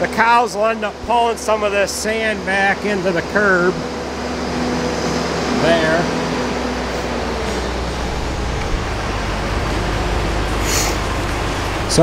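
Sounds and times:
low hum: 0.0 - 12.0
truck mechanism running: 0.0 - 12.0.

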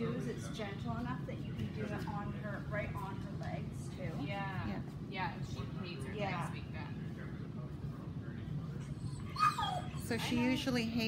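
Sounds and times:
dog whining: 8.8 - 10.5.

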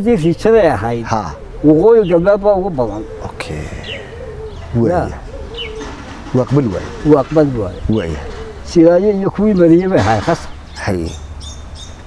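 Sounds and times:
dove cooing: 0.0 - 11.6
small birds chirping: 0.0 - 12.0.

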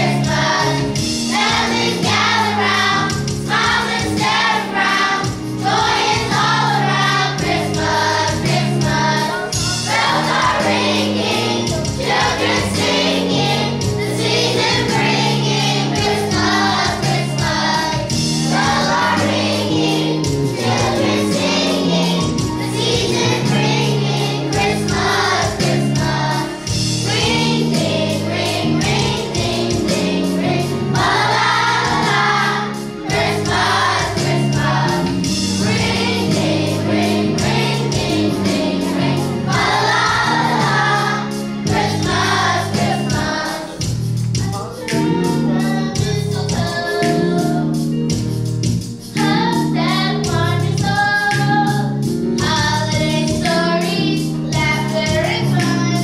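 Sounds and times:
children's choir singing: 0.0 - 47.8, 49.1 - 56.0
instrumental accompaniment: 0.0 - 56.0.

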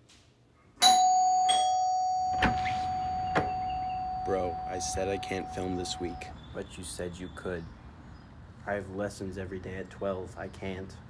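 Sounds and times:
bell-like chime ringing: 0.8 - 6.3.

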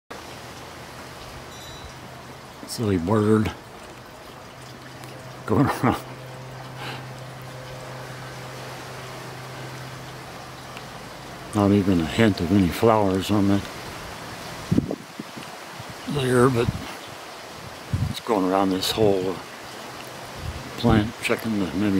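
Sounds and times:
thin high ringing tones: 1.5 - 2.1
wind on microphone: 14.6 - 17.0, 17.6 - 18.3, 20.3 - 21.2.

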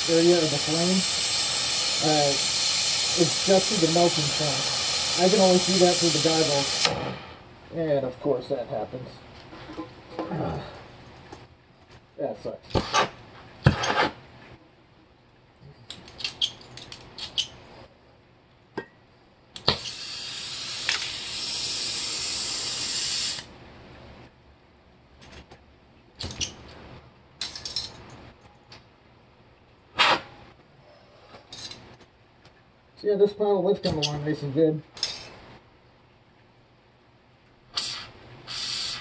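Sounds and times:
gas torch hissing: 0.0 - 7.5, 19.6 - 23.5, 37.8 - 39.0.

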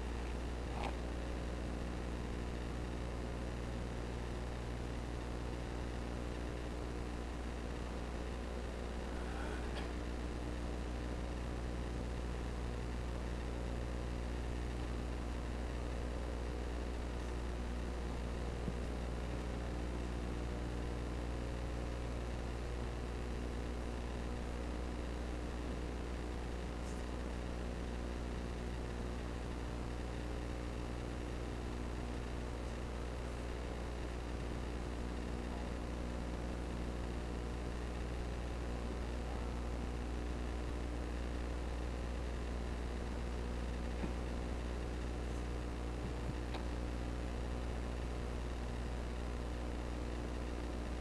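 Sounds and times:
low electrical hum: 0.0 - 51.0
steady hiss: 4.6 - 21.0.

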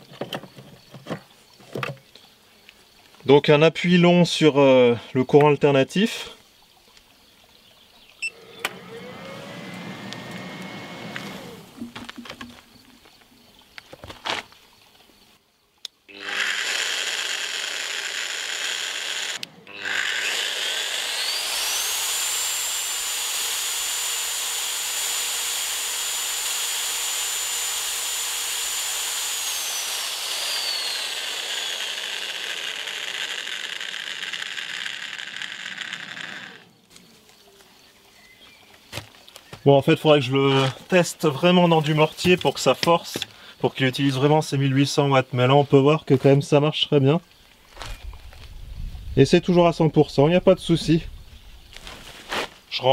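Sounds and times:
mixer motor whine: 8.2 - 12.6, 16.1 - 36.8.

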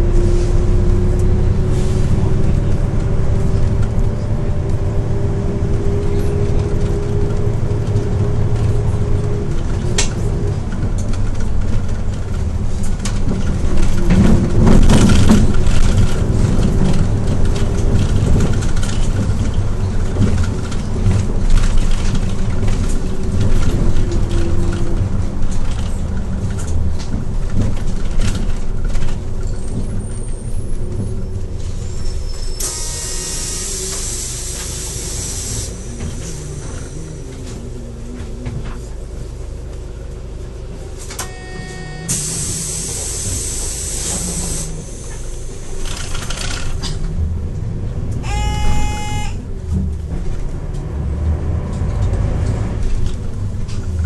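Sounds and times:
bus engine and road noise: 0.0 - 54.0
air brakes hiss: 31.6 - 37.6, 42.0 - 45.7.

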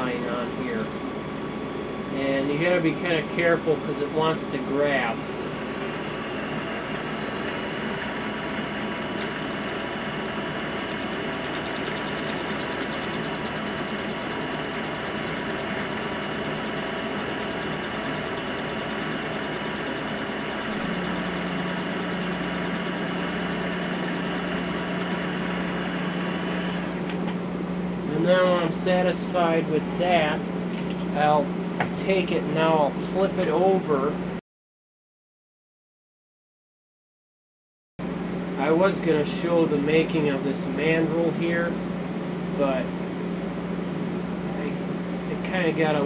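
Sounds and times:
metal lathe motor humming: 9.1 - 27.0
blade scoring circuit board: 9.2 - 25.8.

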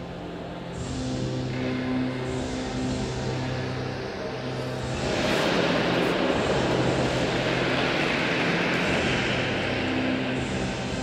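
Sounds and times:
faint music: 0.0 - 11.0
loud rushing noise: 4.9 - 10.3.

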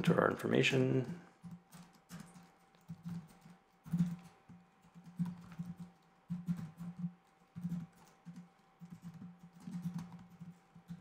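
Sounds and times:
computer keyboard keystrokes: 1.4 - 11.0.

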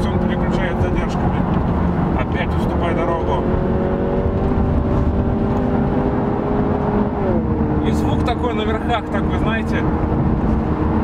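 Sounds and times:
car engine accelerating and upshifting: 0.0 - 11.0
tyre and road rumble: 0.0 - 11.0.

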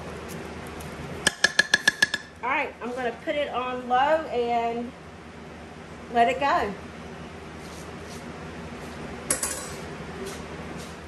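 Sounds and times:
kitchen utensil clink: 9.3 - 9.8.

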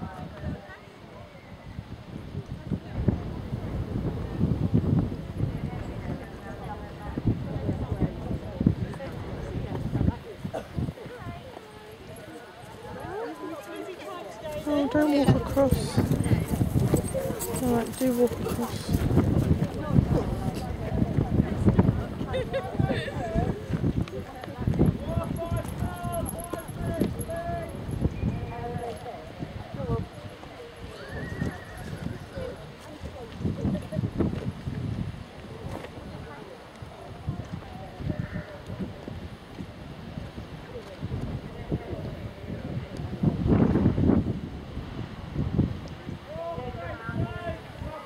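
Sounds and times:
faint voices: 0.0 - 48.0
horse hooves thudding on grass: 11.5 - 22.0.

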